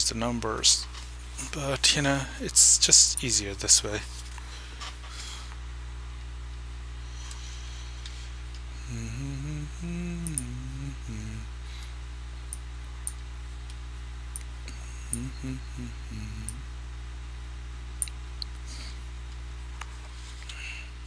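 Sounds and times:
low electrical hum: 0.0s - 21.0s
man humming: 8.7s - 11.7s, 14.6s - 16.8s.

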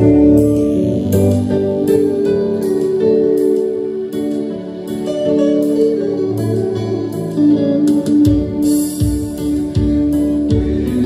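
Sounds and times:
low beat: 0.0s - 11.0s
plucked guitar: 0.0s - 11.0s.

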